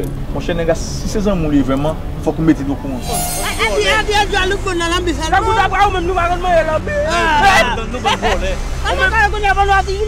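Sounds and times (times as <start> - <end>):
people talking loudly: 2.5 - 10.0.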